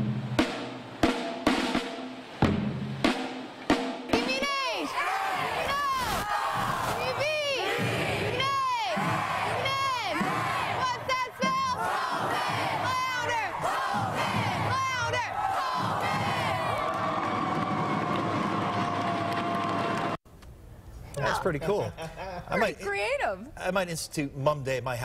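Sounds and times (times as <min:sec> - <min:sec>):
crowd screaming and cheering: 0:04.6 - 0:20.2.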